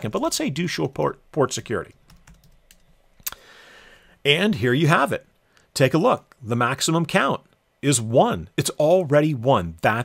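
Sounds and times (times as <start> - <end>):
typing on computer keyboard: 1.9 - 2.9.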